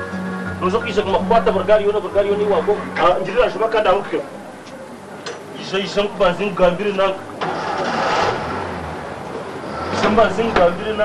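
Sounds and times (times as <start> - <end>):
engine humming: 0.0 - 11.0
person speaking: 0.6 - 4.9.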